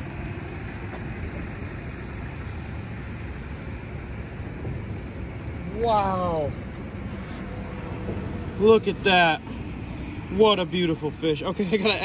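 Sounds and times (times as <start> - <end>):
highway traffic noise: 0.0 - 12.0.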